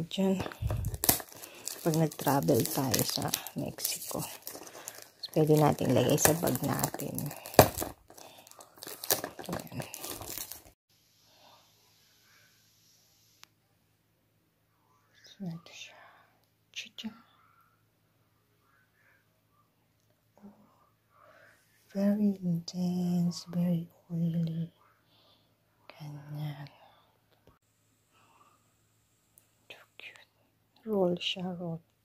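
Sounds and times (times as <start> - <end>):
woman speaking: 0.0 - 1.0, 1.7 - 4.6, 5.2 - 7.5, 9.4 - 10.2, 21.9 - 24.7
person whispering: 0.0 - 7.5, 9.2 - 10.3
soft whispery sounds: 0.0 - 10.8, 14.7 - 28.7, 29.6 - 31.1.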